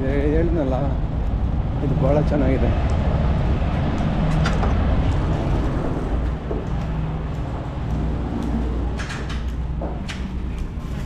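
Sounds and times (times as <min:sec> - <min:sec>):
vehicle engines rumbling: 0:00.0 - 0:11.0.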